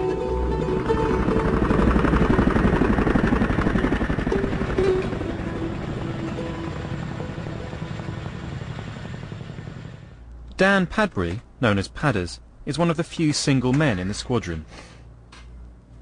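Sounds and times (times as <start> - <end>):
background music: 0.0 - 9.0
helicopter rotors chopping: 0.1 - 10.2.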